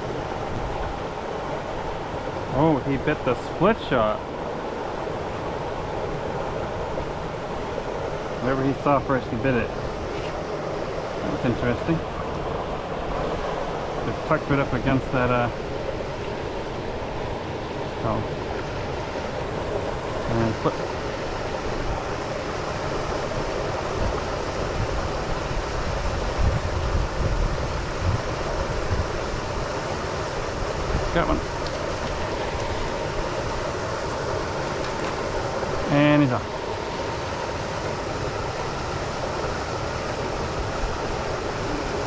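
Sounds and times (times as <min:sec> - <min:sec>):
waterfall rushing into pool: 0:00.0 - 0:42.0
person humming: 0:41.6 - 0:42.0.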